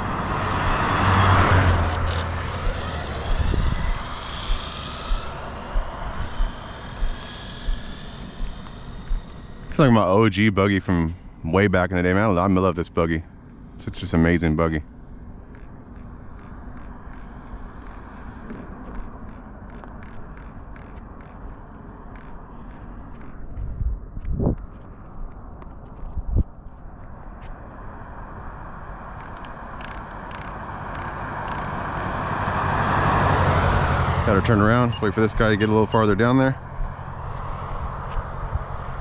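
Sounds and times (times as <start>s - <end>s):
passing cars: 0.0s - 39.0s
vehicle approaching: 0.0s - 39.0s.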